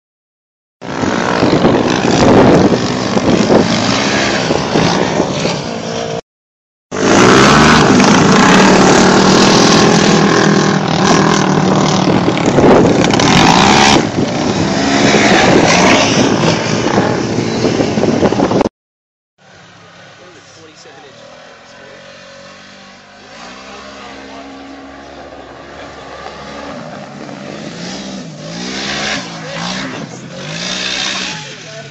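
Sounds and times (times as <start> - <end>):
off-road vehicle engines revving: 0.8 - 6.2, 6.9 - 18.6, 19.5 - 31.9.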